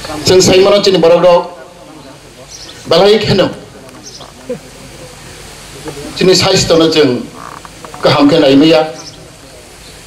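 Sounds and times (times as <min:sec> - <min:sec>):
man speaking over public address: 0:00.0 - 0:09.9.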